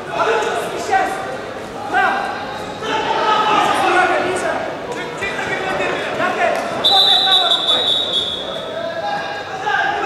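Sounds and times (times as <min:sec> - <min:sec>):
referee's whistle blast: 0:06.8 - 0:08.6.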